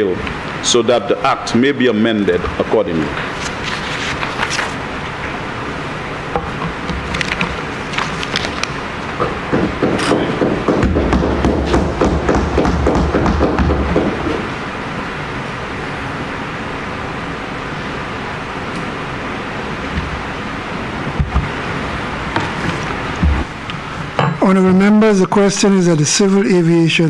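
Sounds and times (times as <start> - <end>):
room noise: 0.0 - 27.0
people thumping desks: 6.3 - 14.5, 21.1 - 21.6, 22.3 - 25.0.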